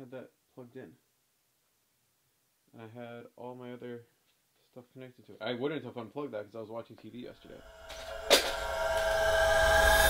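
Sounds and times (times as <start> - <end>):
hissing drone with steady tones: 7.4 - 10.0
sudden hit: 7.4 - 10.0.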